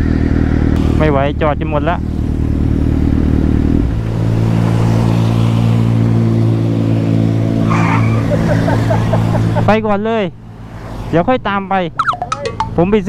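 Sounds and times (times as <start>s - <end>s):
motorcycle engine running: 0.0s - 9.7s.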